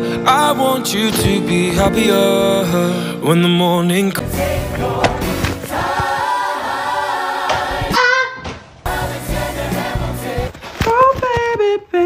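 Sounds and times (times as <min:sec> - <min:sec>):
ensemble singing in chorus: 0:03.9 - 0:08.0, 0:08.8 - 0:10.6
high held aah note: 0:07.9 - 0:08.4.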